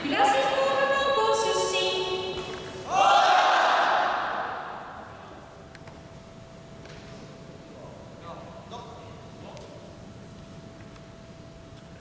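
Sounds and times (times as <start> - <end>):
people shouting: 2.9 - 4.8.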